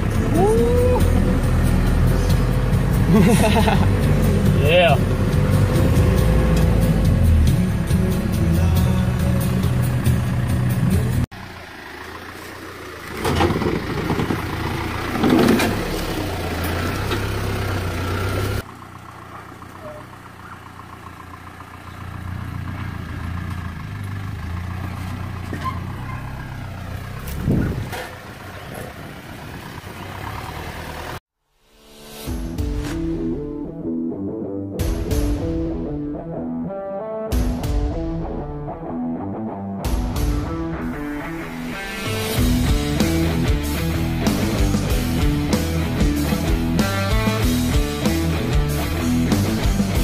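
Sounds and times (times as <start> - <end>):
engine and road noise inside cab: 0.0 - 31.2
engine working up dirt track: 0.0 - 31.2, 37.3 - 50.0.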